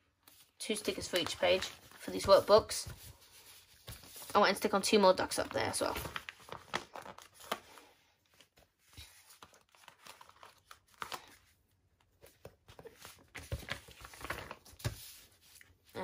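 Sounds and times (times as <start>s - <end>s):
paper sticker sheet crinkling: 0.2s - 7.7s, 8.3s - 11.4s.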